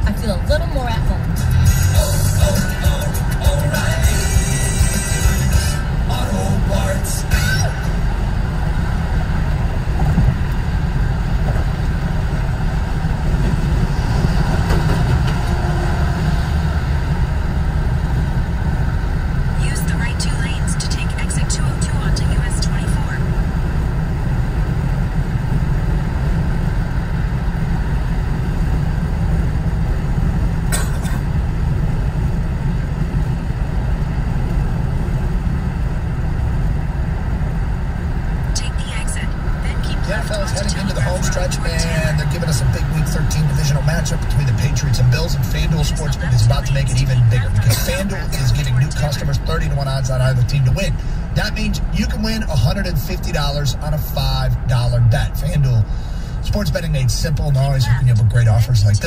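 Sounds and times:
car cabin road rumble: 0.0s - 59.0s.

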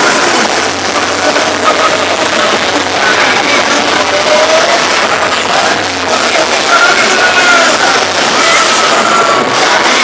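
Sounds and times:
crowd noise and voices: 0.0s - 10.0s
loud live music: 0.0s - 10.0s.

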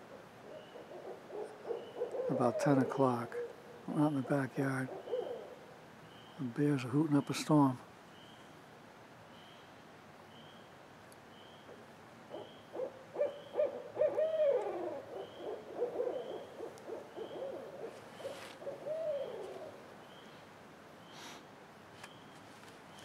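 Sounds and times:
owls hooting and cackling: 0.0s - 5.7s, 11.7s - 19.9s.

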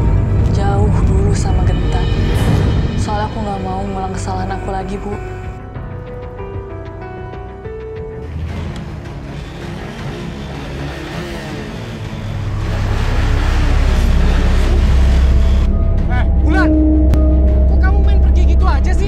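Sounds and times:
motorcycle engine: 8.0s - 17.7s.

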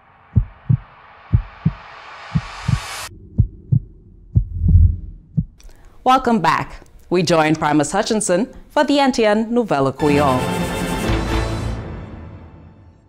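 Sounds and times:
rising whoosh: 0.0s - 5.6s
heartbeat thumps: 0.4s - 5.6s.

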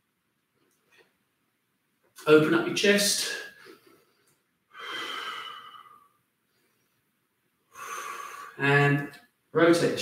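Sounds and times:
man breathing out: 3.6s - 6.2s, 7.7s - 8.6s
man breathing in: 3.6s - 6.8s, 7.7s - 8.6s.

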